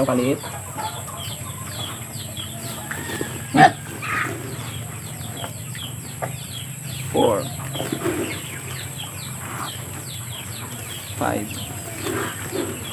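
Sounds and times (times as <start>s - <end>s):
chickens clucking: 0.0s - 12.9s.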